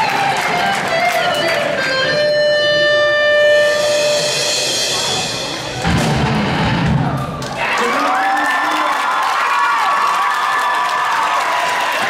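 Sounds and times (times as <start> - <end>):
electric guitar high note: 0.2 - 7.2.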